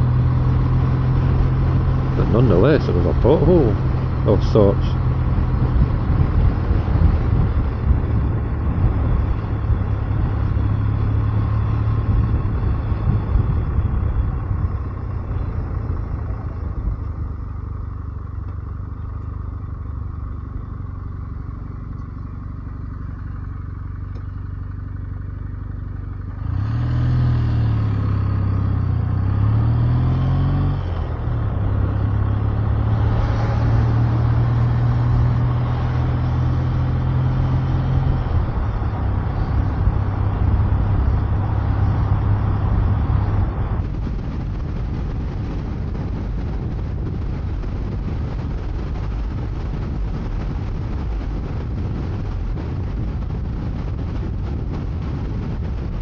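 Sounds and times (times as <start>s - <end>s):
motorcycle engine running: 0.0s - 26.5s, 31.0s - 56.0s.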